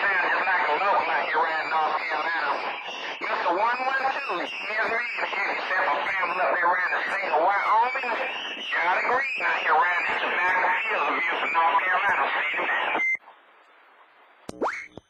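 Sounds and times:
voice over cb radio: 0:00.0 - 0:13.2
faint radio hiss: 0:00.0 - 0:14.5.

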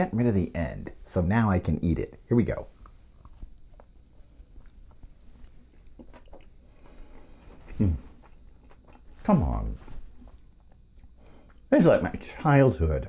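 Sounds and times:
person chewing food: 0:02.7 - 0:11.7
person humming with enjoyment: 0:07.7 - 0:08.1.

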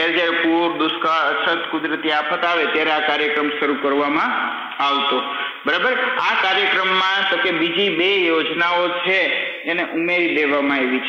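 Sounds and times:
man lecturing: 0:00.0 - 0:11.0.

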